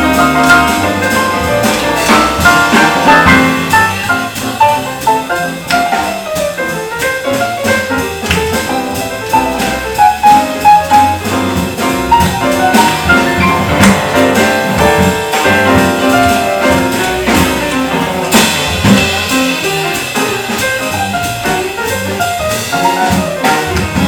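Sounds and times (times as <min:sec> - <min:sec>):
bass: 0:00.0 - 0:24.0
drum kit with cymbals: 0:00.0 - 0:24.0
jazz melody: 0:00.0 - 0:24.0.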